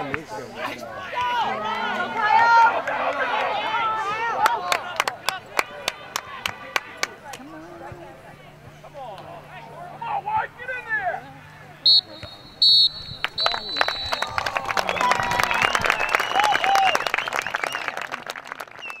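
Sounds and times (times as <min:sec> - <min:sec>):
spectators clapping and cheering: 0:01.0 - 0:07.5, 0:13.0 - 0:19.0
referee's whistle blasts: 0:11.8 - 0:14.4.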